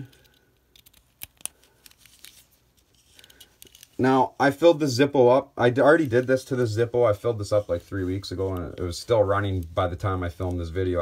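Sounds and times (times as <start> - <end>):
faint ticks and rustle: 6.0 - 11.0.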